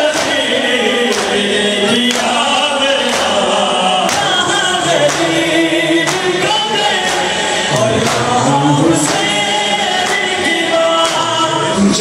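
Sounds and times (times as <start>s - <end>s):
chest beating in unison: 0.0s - 11.3s
crowd chanting: 0.0s - 12.0s
man singing through a microphone: 0.0s - 12.0s.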